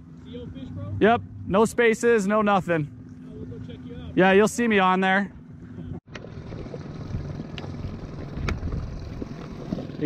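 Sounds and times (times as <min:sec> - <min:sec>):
low rumble of wind and water: 0:00.0 - 0:10.0.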